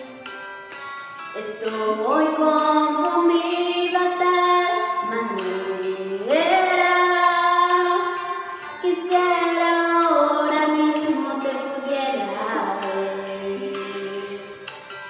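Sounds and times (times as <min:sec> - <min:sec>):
women singing slow song: 0:01.4 - 0:14.6.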